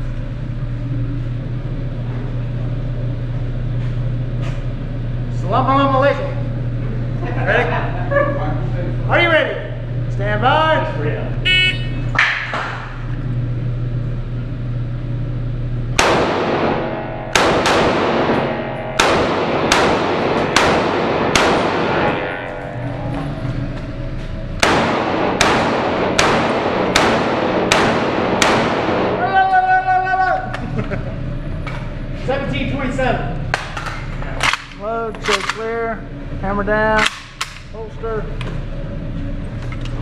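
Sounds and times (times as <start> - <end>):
rifle shots ringing indoors: 16.0 - 22.6, 24.6 - 29.3, 34.4 - 35.6.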